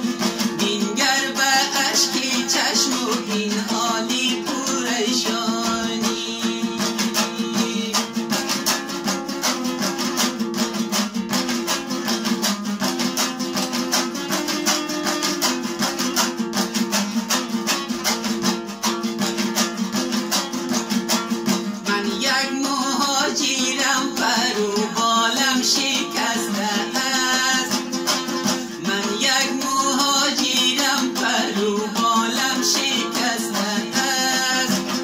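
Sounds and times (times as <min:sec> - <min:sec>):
lute strummed fast: 0:00.0 - 0:35.0.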